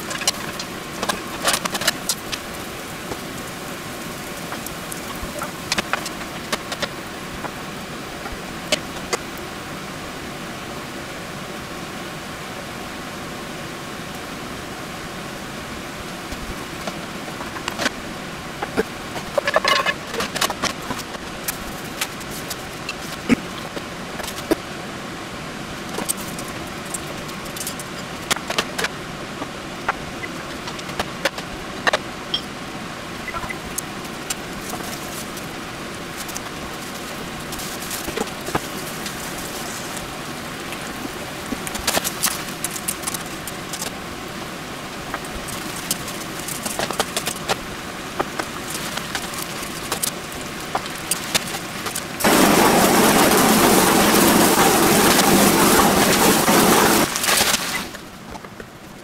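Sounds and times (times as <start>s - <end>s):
loud steady hiss: 0.0s - 59.0s.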